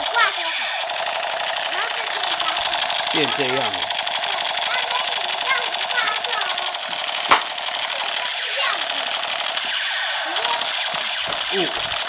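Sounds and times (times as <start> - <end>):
toy gun rapid-fire sound effect: 0.0 - 12.0
sharp click: 4.4 - 8.2, 10.4 - 12.0.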